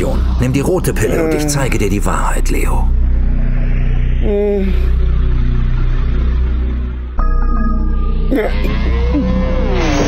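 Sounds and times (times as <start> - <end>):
held low tones: 0.0 - 10.0
low rumbling drone: 0.0 - 10.0.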